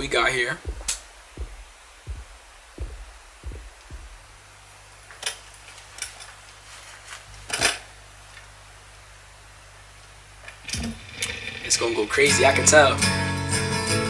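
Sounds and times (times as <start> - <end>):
soft low thumps: 0.0 - 4.6
steady low hum: 0.0 - 5.0
sharp clicks: 0.7 - 2.2.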